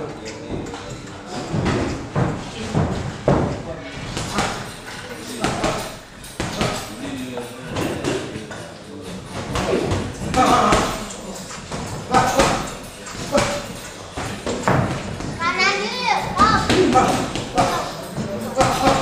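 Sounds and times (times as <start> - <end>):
people's voices: 0.0 - 19.0
boxing gloves thudding: 9.3 - 15.4, 16.4 - 19.0.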